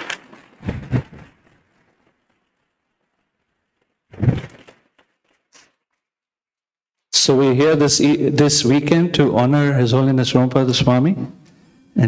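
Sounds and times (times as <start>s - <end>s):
microphone handling thumps and clicks: 0.6s - 1.5s, 4.1s - 4.9s.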